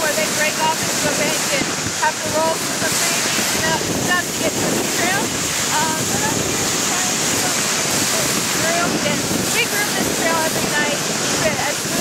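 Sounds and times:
sled runners sliding over snow: 0:00.0 - 0:12.0
wind on microphone: 0:00.0 - 0:12.0.

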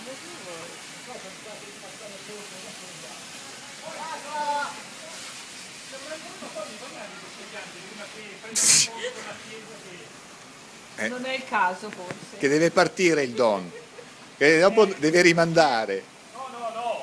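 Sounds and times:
distant people talking: 0:00.0 - 0:15.3
steady hiss: 0:00.0 - 0:17.0.

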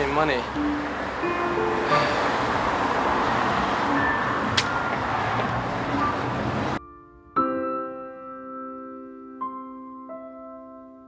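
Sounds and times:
road traffic: 0:00.0 - 0:06.8.

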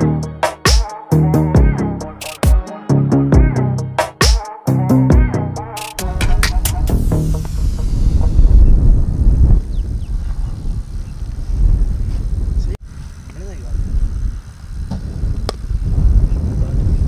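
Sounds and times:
gusty wind rumble on microphone: 0:06.0 - 0:17.0.

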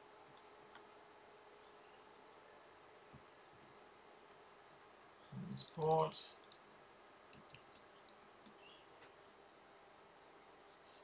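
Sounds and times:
faint keyboard clicks: 0:02.8 - 0:04.8, 0:05.5 - 0:09.1.

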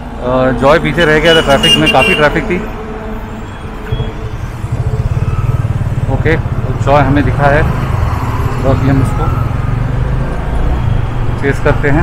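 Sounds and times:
motorcycle engine pulsing: 0:03.9 - 0:08.5.

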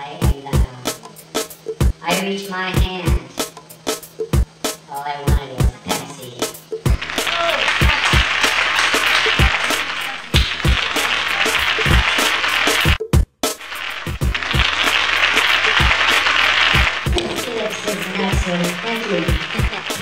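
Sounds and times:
loud static hiss: 0:00.0 - 0:20.0.

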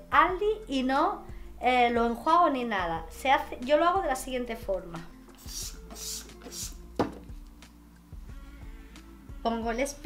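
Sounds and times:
soft background music: 0:00.0 - 0:10.0
spray bottle hissing: 0:05.4 - 0:07.0
sharp knock: 0:07.0 - 0:07.3.

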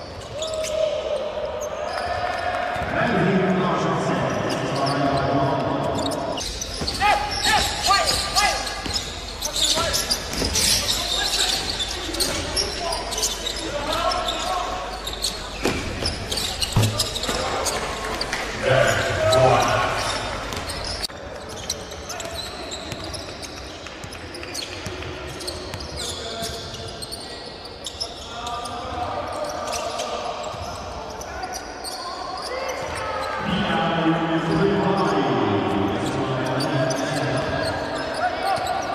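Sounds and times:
basketball bouncing on court: 0:06.5 - 0:10.9, 0:15.6 - 0:18.3.

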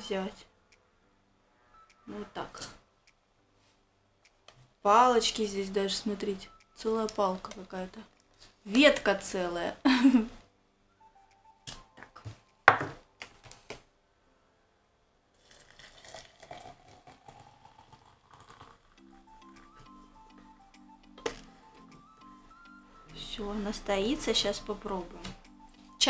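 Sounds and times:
soft background music: 0:00.0 - 0:13.7, 0:15.4 - 0:26.0
water pouring into glass press: 0:15.4 - 0:19.6.

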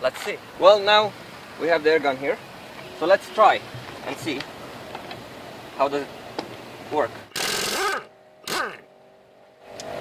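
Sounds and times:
air impact wrench spinning: 0:07.3 - 0:08.8.

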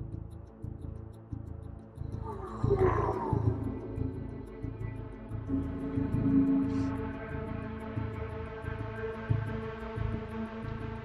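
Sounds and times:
background music with low pulse: 0:00.0 - 0:11.0.

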